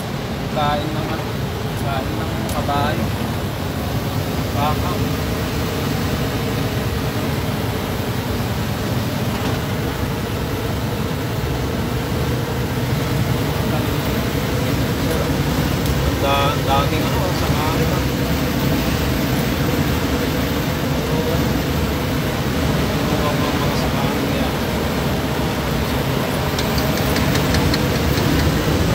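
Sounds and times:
lorry engine running: 0:00.0 - 0:28.9
road noise: 0:00.0 - 0:28.9.

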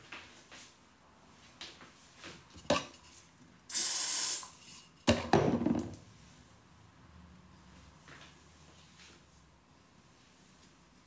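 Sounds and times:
short hiss: 0:03.7 - 0:04.7.

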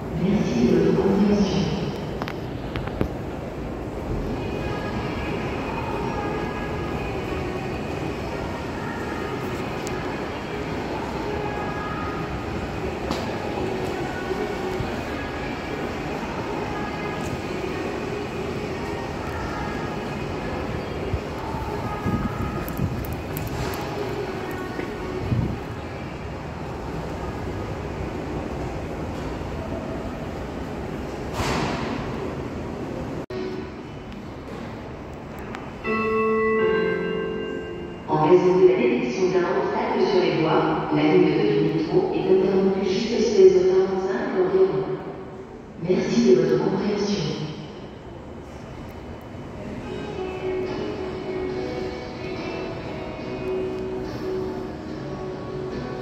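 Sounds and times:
murmur of distant voices: 0:00.0 - 0:35.8
station hall hum: 0:00.0 - 0:56.0.

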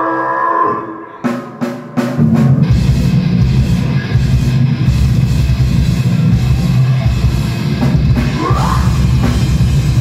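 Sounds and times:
metal band playing live: 0:00.8 - 0:10.0.

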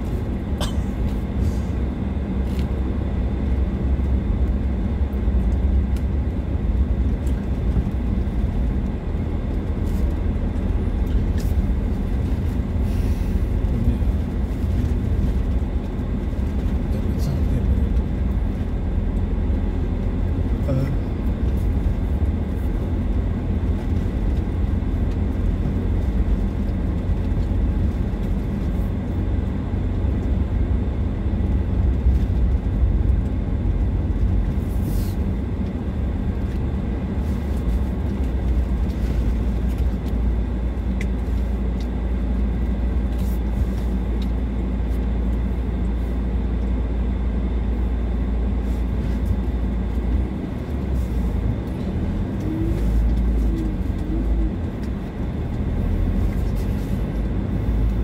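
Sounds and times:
vehicle engine and tyres rumbling: 0:00.0 - 0:58.0.

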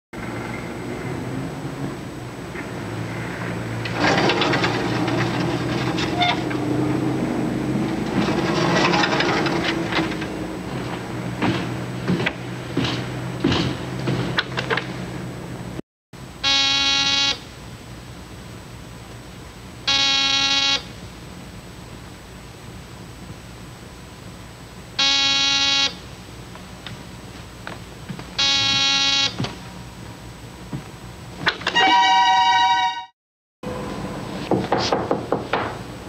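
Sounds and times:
steady low hum: 0:09.4 - 0:31.5
electric door buzzer: 0:16.4 - 0:17.5, 0:19.8 - 0:21.0, 0:25.0 - 0:26.0, 0:28.4 - 0:29.6.

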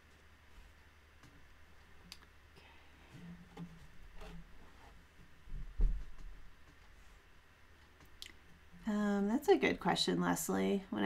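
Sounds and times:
dull thump: 0:05.5 - 0:06.4.

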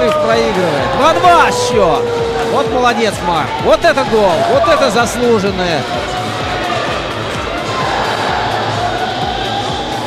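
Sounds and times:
arena crowd noise: 0:00.0 - 0:10.0
music over pa system: 0:00.0 - 0:10.0.

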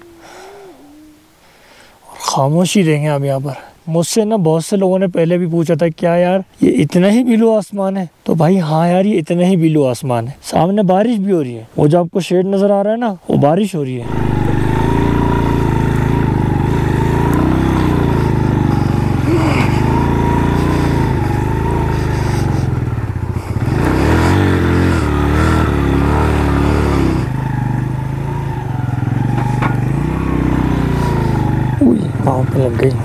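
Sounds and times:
motorcycle engine revving: 0:14.0 - 0:33.0.

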